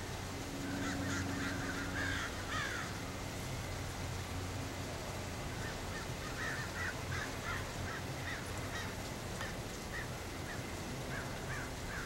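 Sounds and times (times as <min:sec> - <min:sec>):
steady low hum: 0:00.0 - 0:06.3
bird calling: 0:00.7 - 0:02.9.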